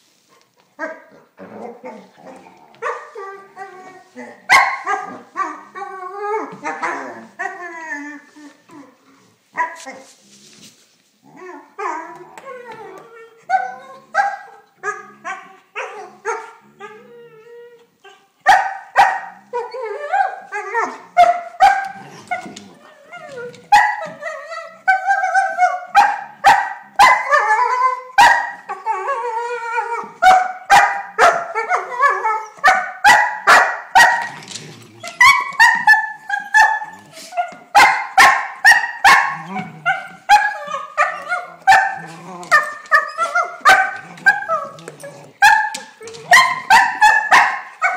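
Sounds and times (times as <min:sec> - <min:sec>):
puppy whining yipping and barking: 0:11.8 - 0:47.9.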